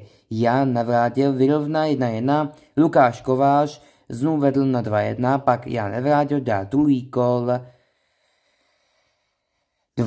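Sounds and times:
man speaking: 0:00.0 - 0:07.7
faint breath: 0:03.8 - 0:04.1, 0:07.7 - 0:10.0.

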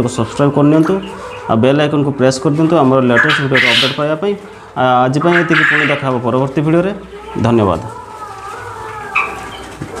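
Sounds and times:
birds chirping: 0:00.0 - 0:10.0
sharp bird call: 0:03.2 - 0:04.0, 0:05.3 - 0:06.0.

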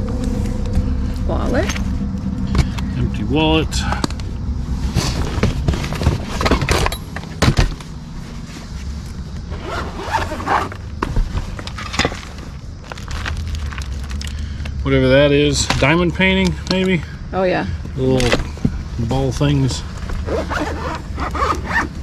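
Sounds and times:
steady low rumble: 0:00.0 - 0:20.3
rustling plastic and bags: 0:07.9 - 0:14.6
case being unzipped: 0:09.5 - 0:10.8, 0:20.2 - 0:22.0.

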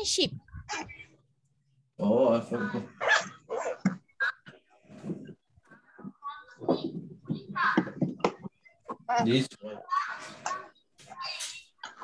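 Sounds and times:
dog barking: 0:03.0 - 0:04.0.

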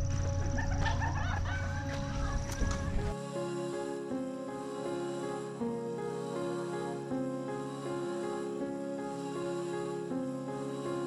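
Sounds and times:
bird calls: 0:00.0 - 0:03.2
steady low rumble: 0:00.0 - 0:03.2.

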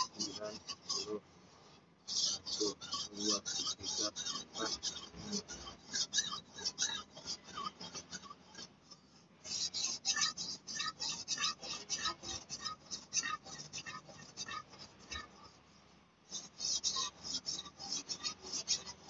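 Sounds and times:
blade rasping on whetstone: 0:00.0 - 0:19.0.

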